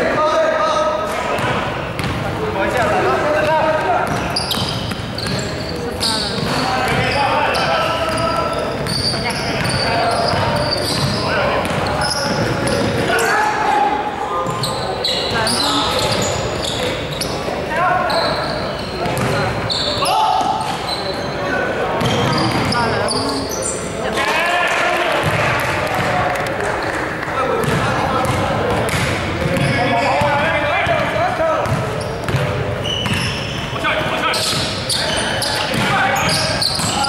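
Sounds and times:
players calling out: 0.0 - 37.0
basketball bouncing: 1.4 - 2.3, 3.4 - 7.1, 8.0 - 13.1, 19.0 - 19.5, 27.6 - 33.4, 34.0 - 37.0.

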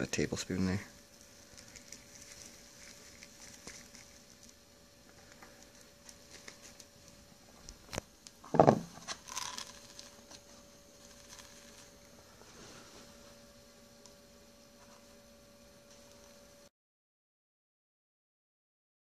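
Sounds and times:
pan thump: 8.5 - 9.0.

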